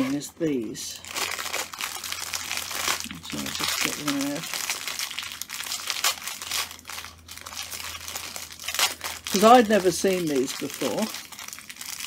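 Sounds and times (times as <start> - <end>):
packaging crinkling and rustling: 0.0 - 12.0.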